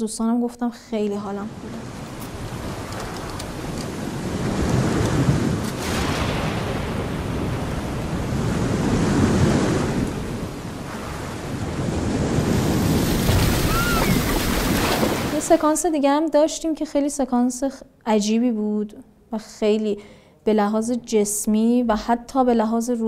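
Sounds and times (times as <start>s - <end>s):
wind: 0.0s - 16.2s
sea waves rushing: 1.4s - 15.7s.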